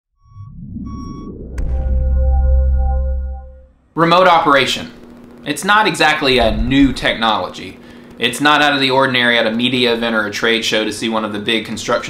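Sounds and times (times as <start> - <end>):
deep boom with ringing tone: 0.3 - 3.8, 6.2 - 7.6
low rumble: 6.2 - 7.6
sharp hit: 6.2 - 7.6.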